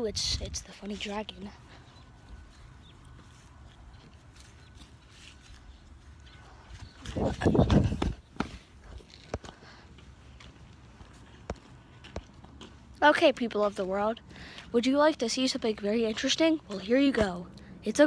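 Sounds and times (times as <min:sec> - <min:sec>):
footsteps on grass and concrete: 0:00.2 - 0:17.5
scuffing and thumps: 0:06.8 - 0:09.5.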